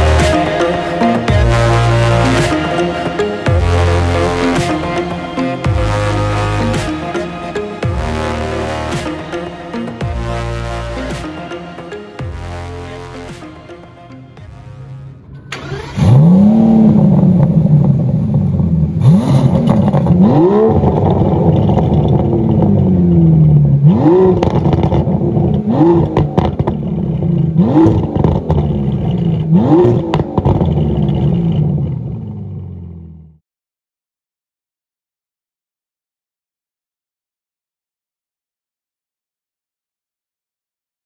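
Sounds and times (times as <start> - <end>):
car engine starting and idling: 0.0 - 33.4
engine revving: 0.0 - 33.4.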